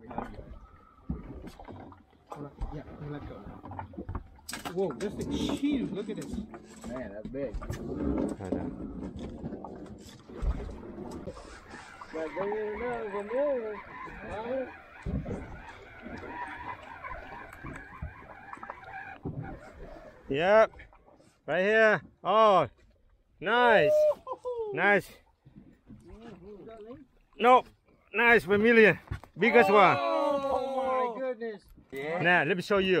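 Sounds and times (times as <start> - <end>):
wind: 0.0 - 33.0
men talking: 2.3 - 3.8, 4.6 - 8.9, 12.0 - 15.4, 20.3 - 20.9, 21.5 - 22.7, 23.4 - 25.2, 26.0 - 33.0
fishing reel cranking: 11.2 - 19.2
drawn-out rising and falling calls: 11.2 - 20.3.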